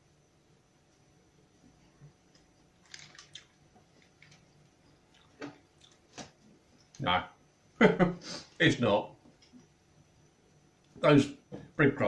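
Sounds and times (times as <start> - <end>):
faint chewing: 2.3 - 7.0.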